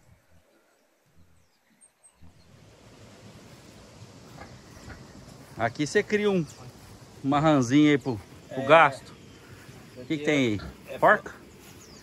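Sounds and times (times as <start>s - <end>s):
soft wind hiss: 0.0s - 12.0s.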